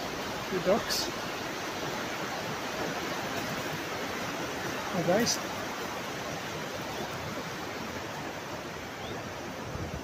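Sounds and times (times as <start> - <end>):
river water pouring over weir: 0.0 - 10.0.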